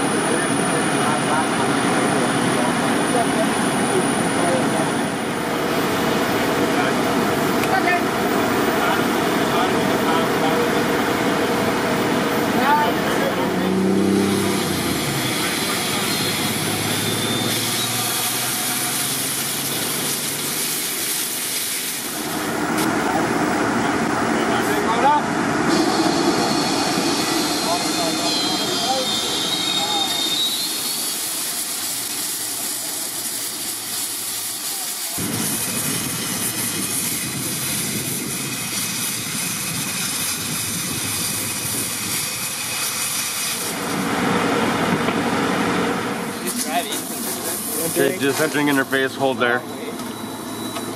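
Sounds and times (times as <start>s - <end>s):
indistinct voices: 0.0s - 19.8s
small engine running: 0.0s - 50.9s
steady hiss of air: 5.1s - 44.2s.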